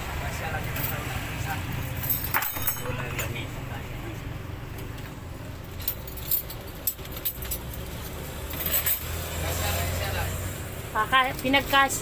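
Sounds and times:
metallic clinks and rattles: 0.5 - 3.4, 4.8 - 9.3.

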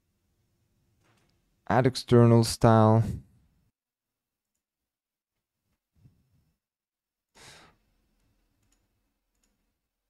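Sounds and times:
short breath: 7.4 - 7.8.

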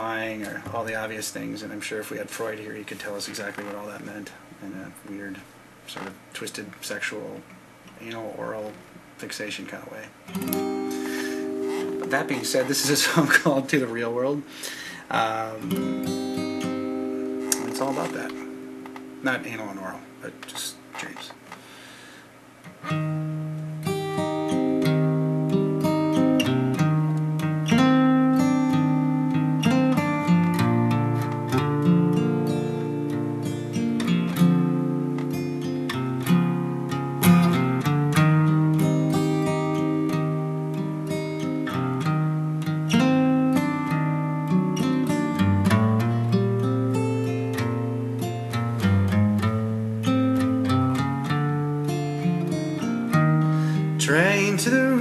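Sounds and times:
guitar picking and strumming: 10.2 - 55.0.

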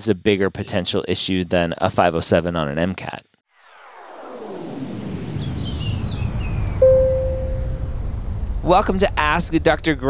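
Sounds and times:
falling sparkle tones: 6.8 - 8.0
held note: 6.8 - 8.1.

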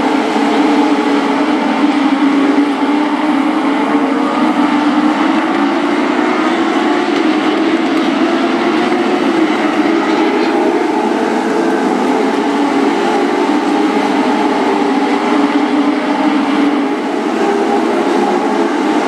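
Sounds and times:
race car engines droning: 0.0 - 19.0.

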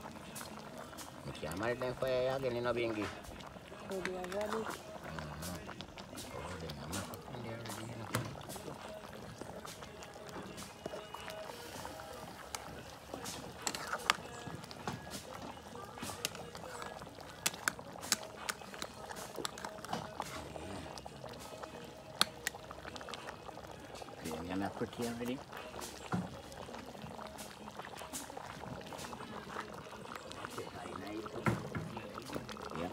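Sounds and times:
liquid pouring from spoon: 2.9 - 32.9.

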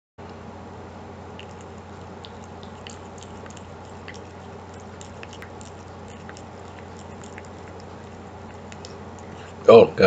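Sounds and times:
steady low hum: 0.2 - 10.0
cat chewing: 1.2 - 9.7.

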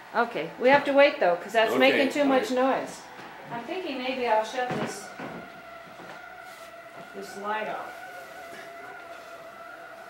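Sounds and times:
room light electrical whine: 0.0 - 10.0.

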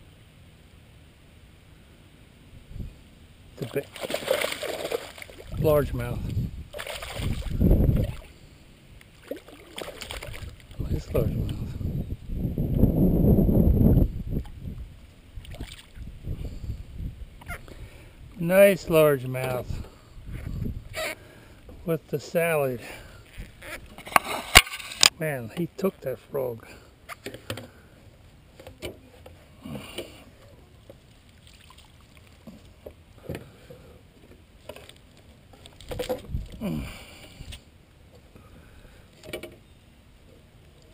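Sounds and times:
water sloshing against boat hull: 3.6 - 8.3, 9.2 - 11.6, 30.8 - 36.6
low rumbling: 5.4 - 8.9, 10.1 - 22.2.

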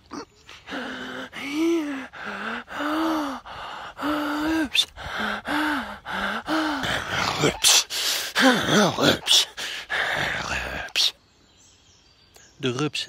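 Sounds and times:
man making drawn-out vocal sounds: 0.0 - 11.2
man breathing: 0.4 - 11.2.

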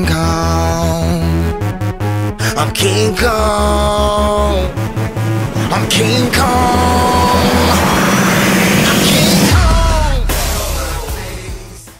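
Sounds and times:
hip-hop music with bass: 0.0 - 11.9
rising whoosh of noise: 3.3 - 10.5.

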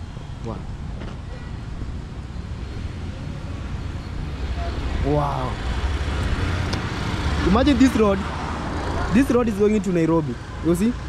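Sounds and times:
motor vehicles passing: 0.0 - 11.0.

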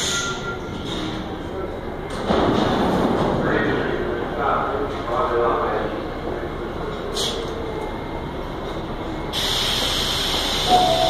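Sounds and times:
stopped subway train rumble: 0.0 - 11.0.

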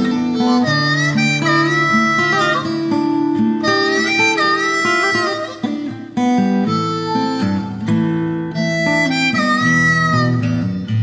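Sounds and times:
harmonica melody: 0.0 - 11.0
strummed acoustic guitar: 0.0 - 11.0.

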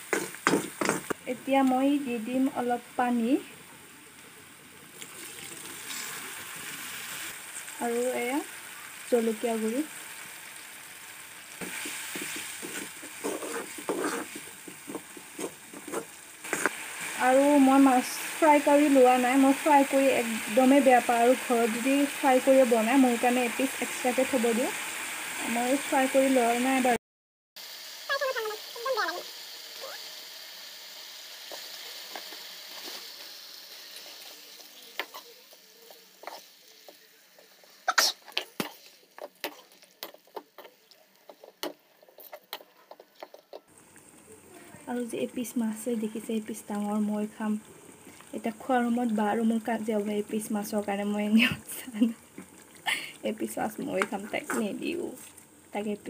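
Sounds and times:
oil crackling and popping: 0.0 - 1.3, 4.0 - 7.8, 8.5 - 17.4, 31.3 - 45.8, 46.4 - 55.8
fish sizzling in hot oil: 0.0 - 27.0, 27.6 - 56.0
vegetables frying: 0.0 - 27.0, 27.6 - 56.0
water pouring into hot pan: 4.9 - 13.0, 43.7 - 54.3.

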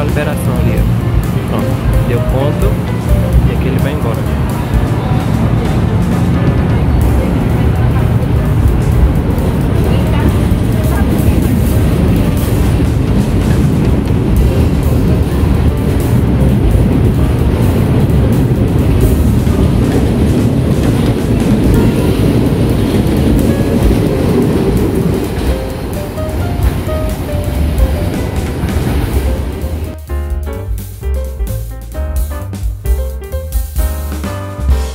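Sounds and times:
electric train running on rails: 0.0 - 32.3
background music: 0.0 - 34.9.

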